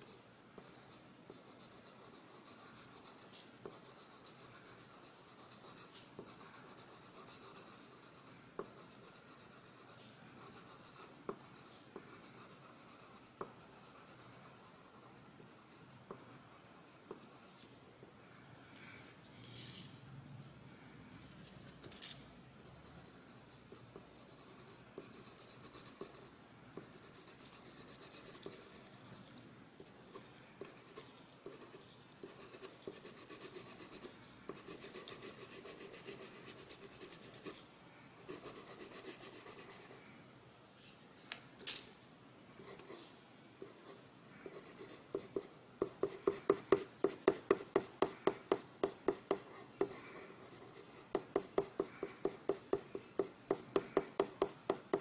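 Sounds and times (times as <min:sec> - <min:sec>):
pencil scratching on paper: 0:00.0 - 0:17.6, 0:29.8 - 0:37.6, 0:38.3 - 0:40.0, 0:42.6 - 0:43.0, 0:43.6 - 0:55.0.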